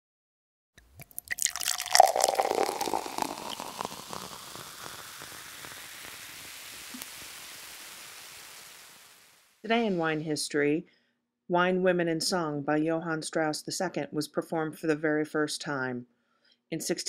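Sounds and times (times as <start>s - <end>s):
liquid pouring into a glass: 0.8s - 8.7s.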